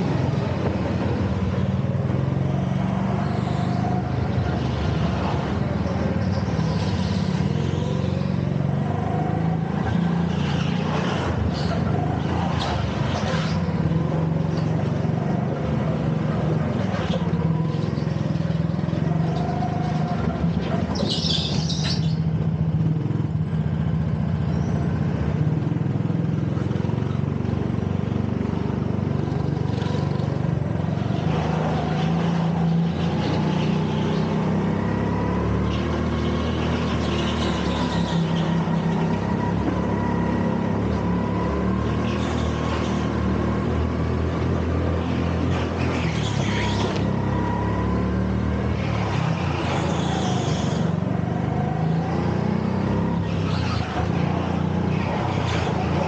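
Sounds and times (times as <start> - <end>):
go-kart engine revving: 0.0 - 56.0.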